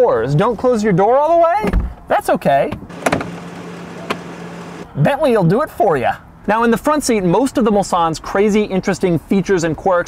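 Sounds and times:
car door latch click: 2.7s - 4.4s.

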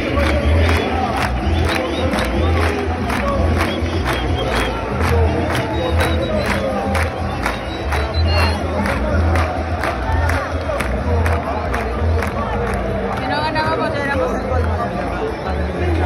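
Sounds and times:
rhythmic drum beat: 0.0s - 12.9s
stadium crowd chanting: 0.0s - 16.0s.

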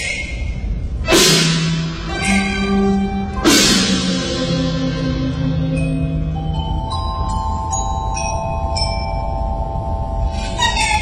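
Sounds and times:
steady low hum: 0.0s - 11.0s
held instrumental tones: 0.8s - 11.0s
ringing struck notes: 1.1s - 11.0s.

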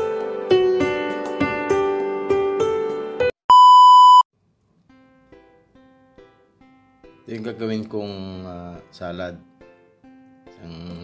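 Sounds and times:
loud electronic beep: 3.5s - 4.2s.

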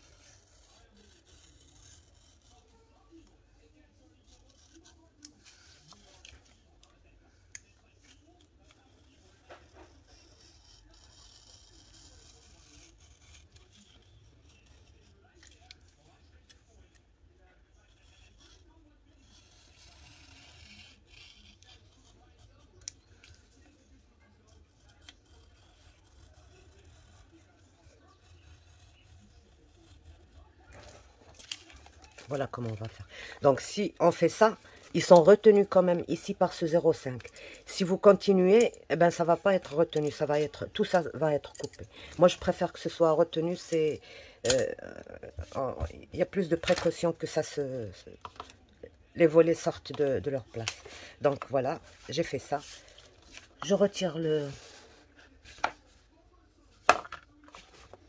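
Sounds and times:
knife blade scratching paper: 0.0s - 2.9s, 8.1s - 15.6s, 17.9s - 23.0s, 24.5s - 43.8s.

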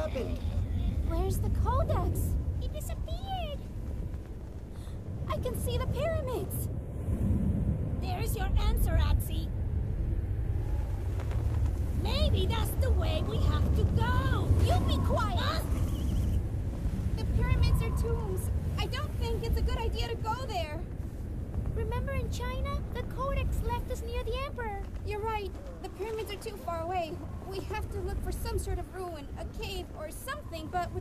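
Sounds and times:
sandstorm wind rumble: 0.0s - 31.0s.

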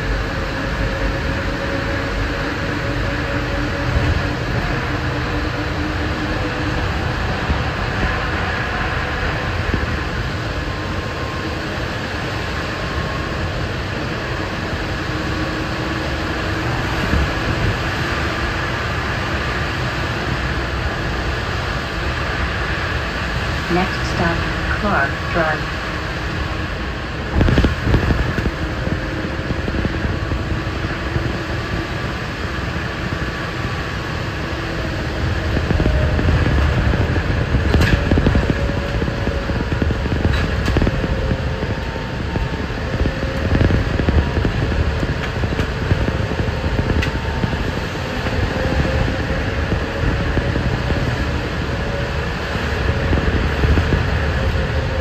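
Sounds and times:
bus rumble: 0.0s - 55.0s
motor and fan hum: 0.0s - 55.0s
road noise: 0.0s - 55.0s.

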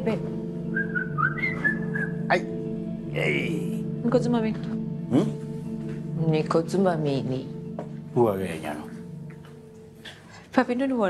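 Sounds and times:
background music low chord: 0.0s - 11.0s.

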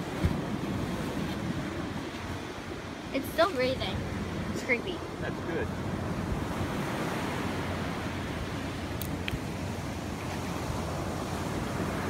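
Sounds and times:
surf: 0.0s - 12.0s
wind on microphone: 0.0s - 12.0s.

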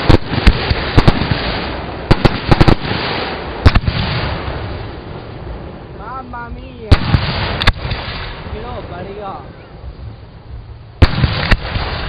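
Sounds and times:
fireworks exploding: 0.0s - 9.6s, 10.9s - 12.0s
rumbling echo: 0.0s - 12.0s.

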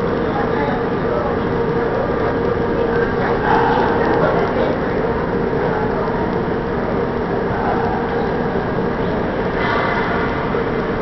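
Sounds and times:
steady hum: 0.0s - 11.0s
indistinct voices: 2.3s - 6.5s.

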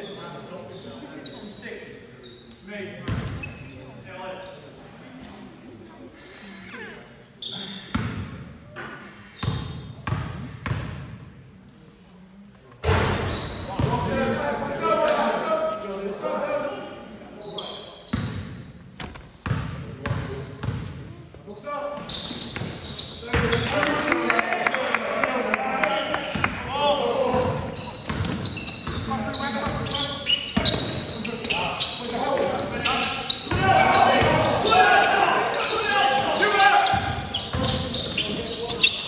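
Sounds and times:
sneakers squeaking: 0.0s - 4.0s, 5.0s - 5.9s, 7.3s - 11.2s, 12.8s - 14.2s, 15.6s - 16.4s, 17.4s - 21.1s, 21.8s - 23.8s, 25.8s - 39.0s
basketball bouncing on court floor: 18.1s - 21.0s
players calling out: 22.0s - 39.0s.

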